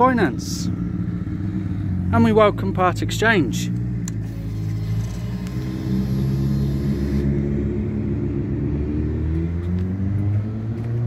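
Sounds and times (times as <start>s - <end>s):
motorcycle engine idling: 0.0s - 7.4s.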